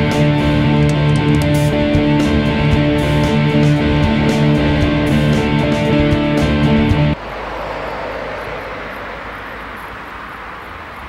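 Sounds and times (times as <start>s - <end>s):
music: 0.0s - 7.2s
distant outdoor rumble: 0.0s - 11.0s.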